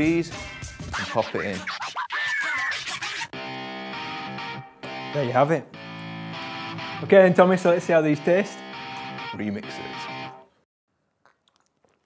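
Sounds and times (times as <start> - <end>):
guitar background music: 3.4 - 10.5.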